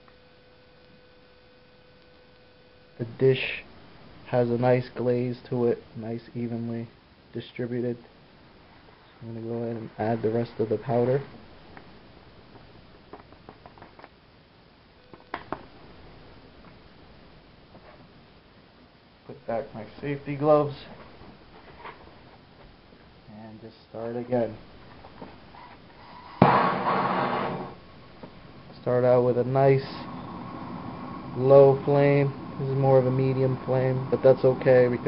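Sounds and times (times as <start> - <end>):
torch flame hissing: 25.5 - 35.0
blow torch lighting with a pop: 26.0 - 28.4.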